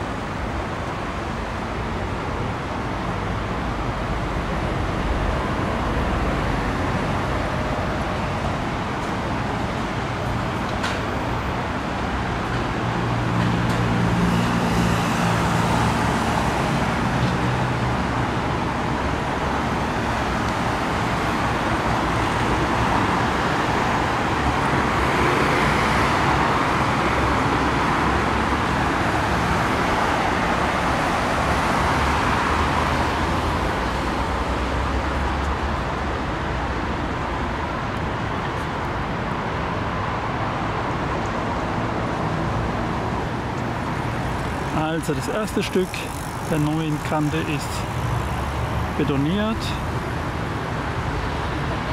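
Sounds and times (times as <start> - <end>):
passing cars: 0.0 - 51.9.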